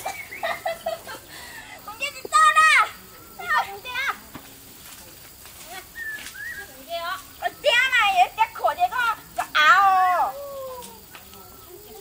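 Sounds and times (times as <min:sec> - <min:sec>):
young women calling out excitedly: 0:01.9 - 0:04.2, 0:06.6 - 0:11.0.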